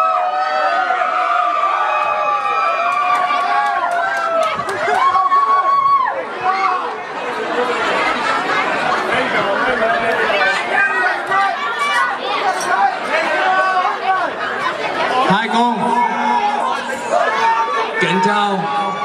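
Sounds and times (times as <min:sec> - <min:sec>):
crowd talking in echoing hall: 0:00.0 - 0:19.0.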